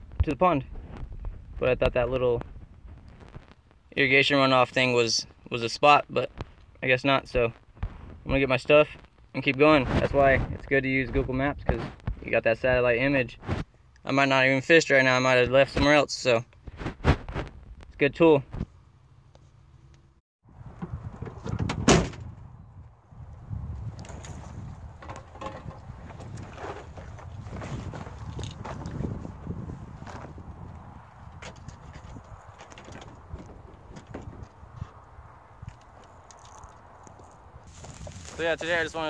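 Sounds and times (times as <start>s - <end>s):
truck bed slam: 21.4s - 22.4s
rustling: 35.8s - 39.0s.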